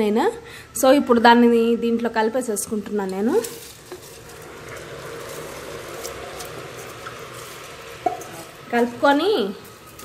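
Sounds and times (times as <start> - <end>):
food sizzling in a pot: 2.5 - 10.0.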